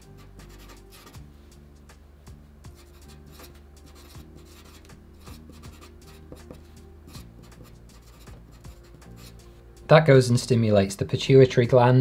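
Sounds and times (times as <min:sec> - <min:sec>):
marker scratching on paper: 0:00.0 - 0:01.3, 0:02.7 - 0:09.5
low steady hum: 0:00.0 - 0:11.7.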